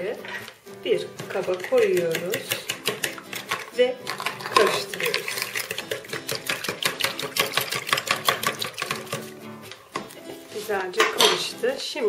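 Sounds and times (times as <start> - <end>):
utensil clicking against plastic bowl: 1.5 - 9.2.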